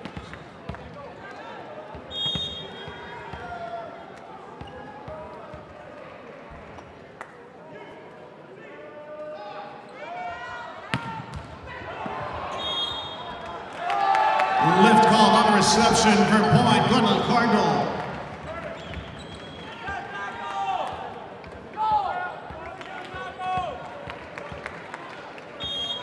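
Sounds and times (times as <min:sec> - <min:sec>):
players calling: 0:14.5 - 0:19.1
crowd chatter: 0:14.6 - 0:19.2.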